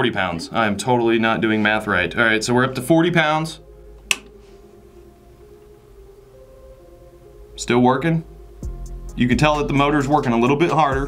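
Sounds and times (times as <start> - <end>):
rocker switch click: 4.0 - 4.4.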